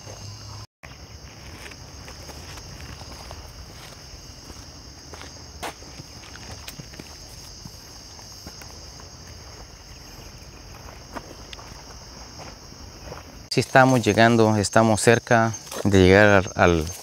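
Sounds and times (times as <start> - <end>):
footsteps on dirt trail: 0.0 - 14.3, 15.6 - 16.1
night insects chirring: 0.0 - 17.0.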